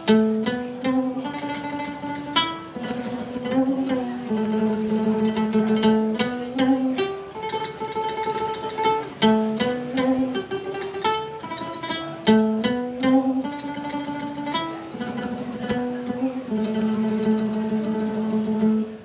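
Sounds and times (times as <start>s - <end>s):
lute tremolo melody: 0.0s - 19.0s.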